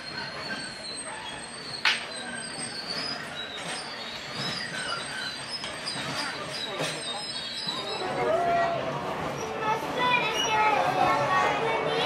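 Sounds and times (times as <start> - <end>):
train rolling rumble: 0.0 - 12.0
train wheels squealing: 0.0 - 12.0.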